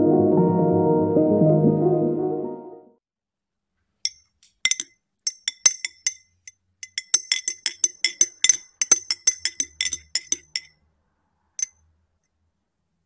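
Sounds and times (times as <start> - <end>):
teaspoon clinking in glass: 4.1 - 10.7.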